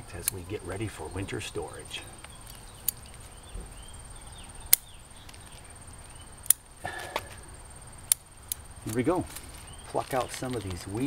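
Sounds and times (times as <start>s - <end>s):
scissors snipping twigs: 2.2s - 3.4s, 4.7s - 5.6s, 8.0s - 11.0s.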